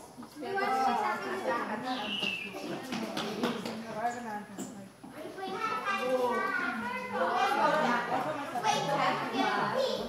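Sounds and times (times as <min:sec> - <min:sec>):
people chattering: 0:00.0 - 0:10.0
children's voices: 0:00.2 - 0:03.8, 0:05.1 - 0:10.0.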